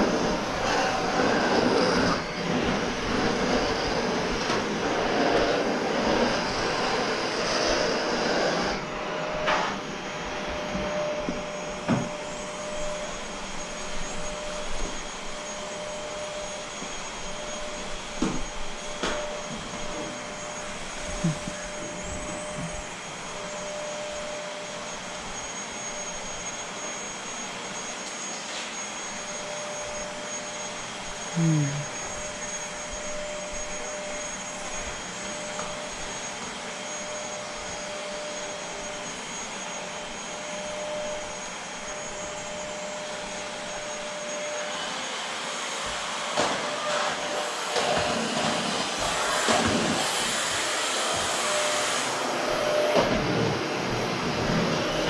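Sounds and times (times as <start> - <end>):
vacuum cleaner running: 0.0 - 55.0.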